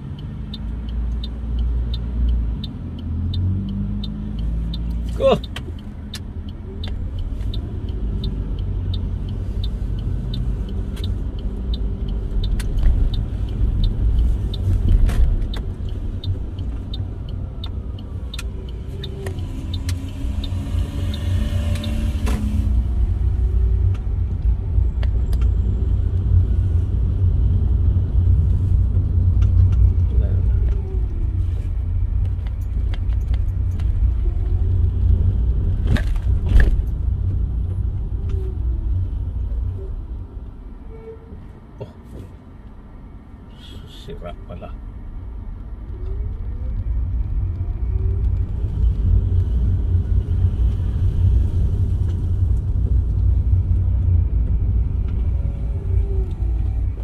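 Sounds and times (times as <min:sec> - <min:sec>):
car engine and road noise: 0:00.0 - 0:57.0.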